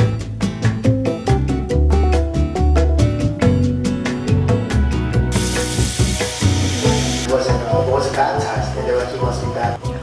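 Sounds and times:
background music with beat: 0:00.0 - 0:10.0
leaves sizzling in a pan: 0:05.3 - 0:07.3.

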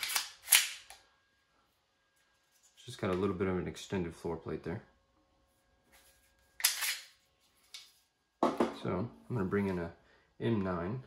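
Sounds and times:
pistol magazine scraping out: 0:06.6 - 0:07.1.

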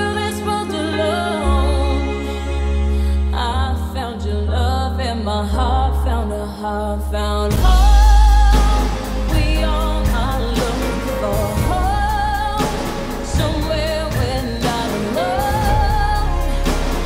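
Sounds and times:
woman singing pop ballad: 0:00.0 - 0:17.0
backing music: 0:07.5 - 0:17.0.

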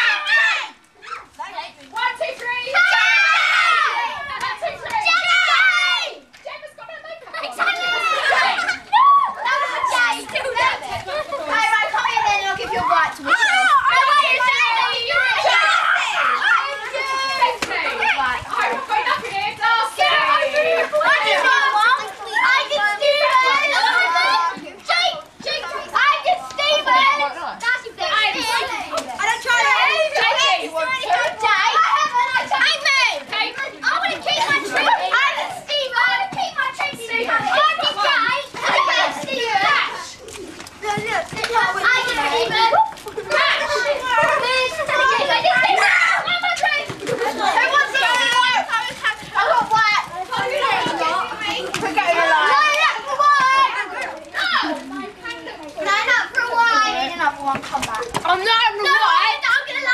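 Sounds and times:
children chattering excitedly: 0:00.0 - 0:59.9.

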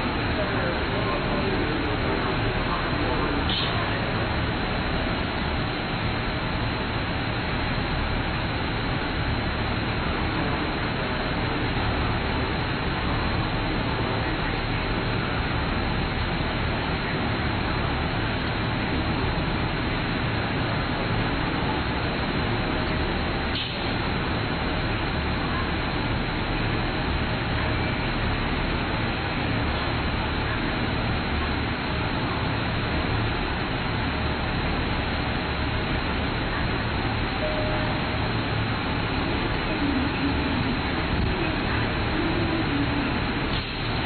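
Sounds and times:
station platform rumble and hiss: 0:00.0 - 0:44.0.

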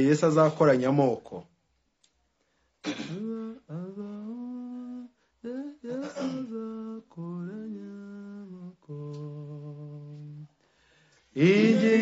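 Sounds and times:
person humming: 0:03.1 - 0:10.5, 0:11.4 - 0:12.0.

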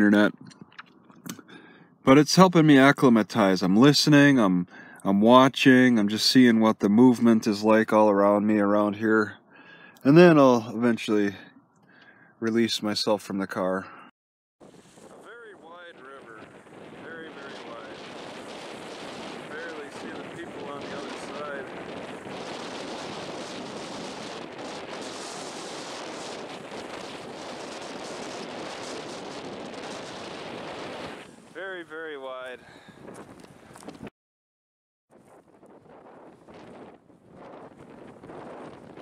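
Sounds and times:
wind on microphone: 0:14.6 - 0:31.8, 0:32.6 - 0:34.1, 0:35.1 - 0:39.0.

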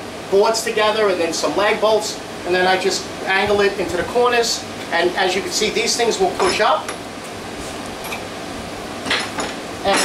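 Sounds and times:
fan-like background hiss: 0:00.0 - 0:10.0.

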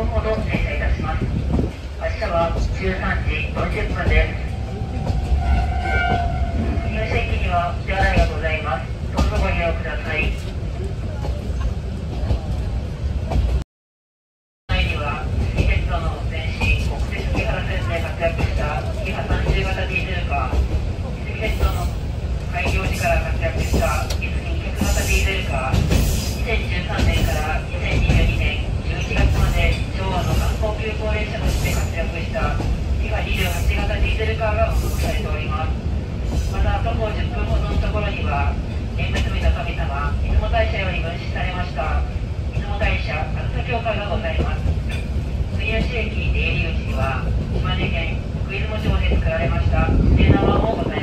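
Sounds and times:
loudspeaker announcement voice: 0:00.0 - 0:01.4, 0:02.0 - 0:11.5, 0:14.7 - 0:35.8, 0:36.5 - 0:51.0
railcar rumble: 0:00.0 - 0:13.6, 0:14.7 - 0:51.0.

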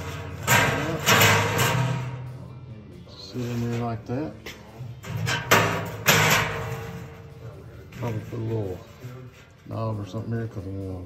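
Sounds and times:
metal grate clanking in steel tank: 0:00.0 - 0:02.3, 0:05.0 - 0:07.3.

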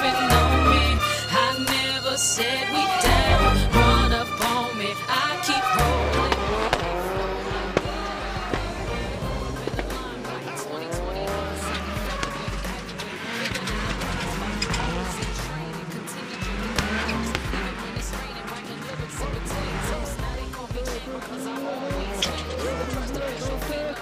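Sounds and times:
race car engines revving: 0:00.0 - 0:24.0
rap music with heavy bass: 0:00.0 - 0:24.0.

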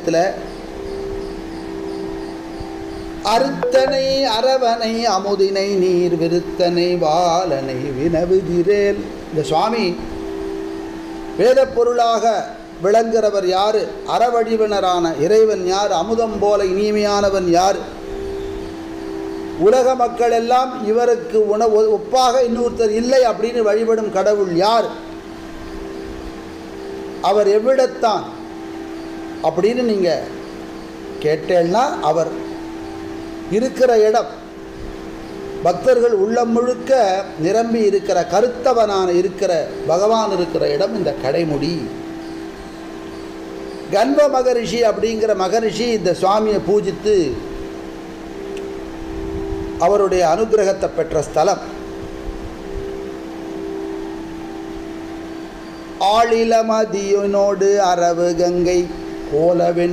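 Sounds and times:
background hum with held tones: 0:00.0 - 0:59.9
faint hiss: 0:00.0 - 0:59.9.

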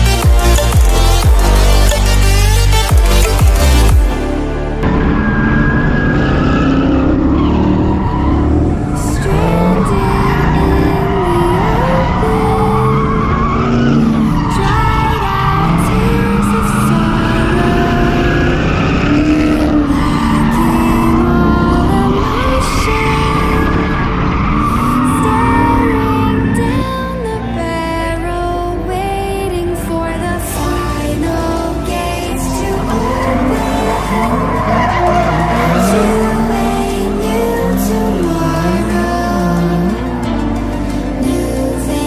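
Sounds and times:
car engines revving: 0:00.0 - 0:42.0
tyres squealing: 0:31.1 - 0:39.4.

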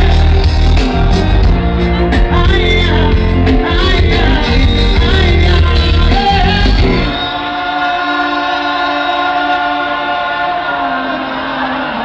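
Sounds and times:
voices singing held harmony: 0:06.1 - 0:12.0.

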